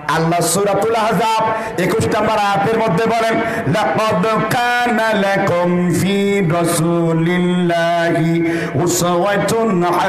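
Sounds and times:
man chanting into a microphone: 0:00.0 - 0:10.0.

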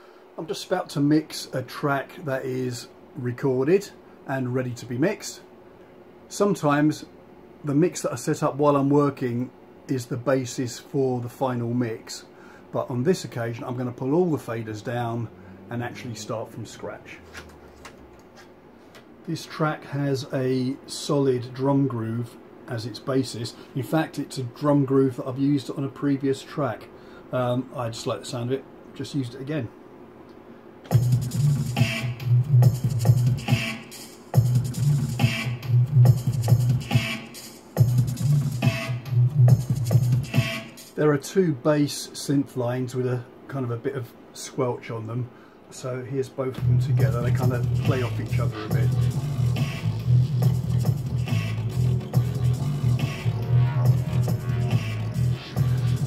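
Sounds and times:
squelchy bass synth: 0:30.9 - 0:40.8, 0:46.6 - 0:56.0
slow electronic dub drum groove: 0:30.9 - 0:41.0, 0:46.6 - 0:56.0.

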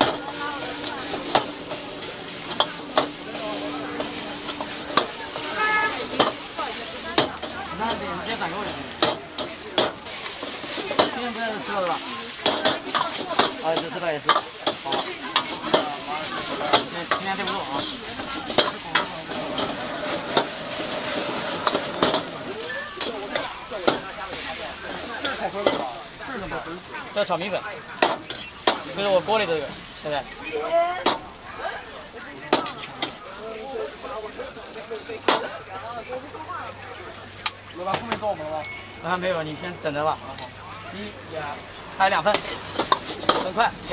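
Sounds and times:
metal ladle clanking on wok: 0:00.0 - 0:06.5, 0:07.1 - 0:08.0, 0:08.6 - 0:11.2
metal ladle striking wok: 0:00.0 - 0:24.4
metal spatula scraping and clanking: 0:00.0 - 0:26.0, 0:42.2 - 0:43.9
noodles sizzling in a wok: 0:00.0 - 0:43.9.

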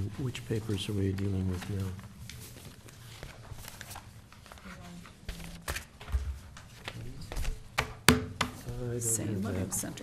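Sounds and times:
papers and objects knocking on wood: 0:05.2 - 0:08.7.

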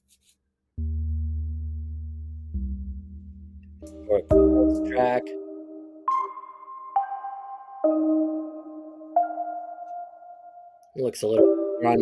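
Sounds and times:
soft sustained chords: 0:01.1 - 0:10.8.

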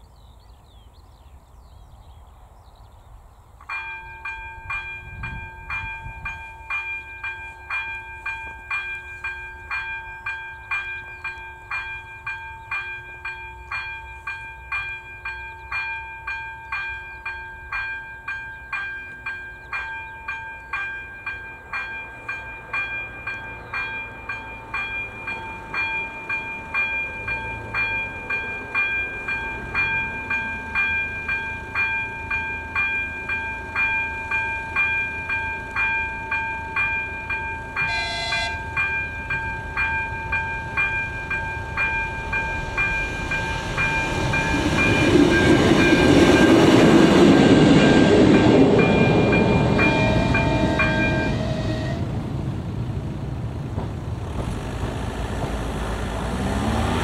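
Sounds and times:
level crossing bell ringing: 0:03.7 - 0:44.6
low rumble: 0:39.3 - 0:56.3.

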